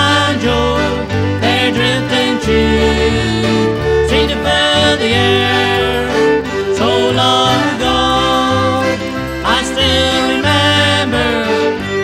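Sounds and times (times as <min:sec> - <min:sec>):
acoustic string accompaniment: 0:00.0 - 0:12.0
fiddle lead: 0:00.0 - 0:12.0
folk band instrumental: 0:00.0 - 0:12.0.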